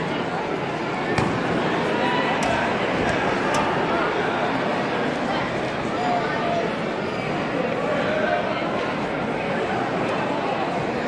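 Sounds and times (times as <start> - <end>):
crowd chatter in a hall: 0.0 - 11.0.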